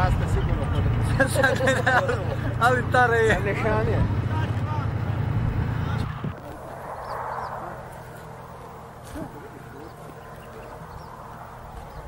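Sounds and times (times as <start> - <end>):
tank diesel engine rumble: 0.0 - 12.0.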